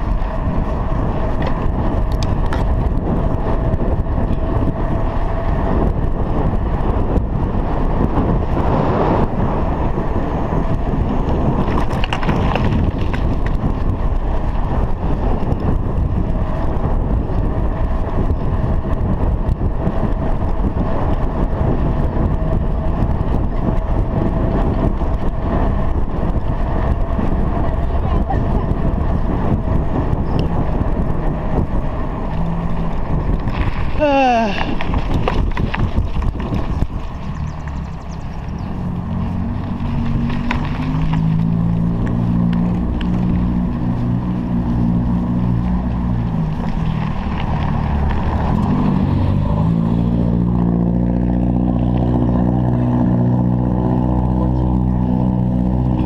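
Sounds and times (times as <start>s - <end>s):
wind and tyre noise: 0.0s - 56.0s.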